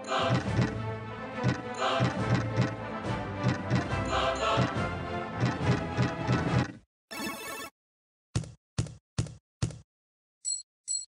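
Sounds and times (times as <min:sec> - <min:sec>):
slot machine spin music: 0:05.4 - 0:07.7.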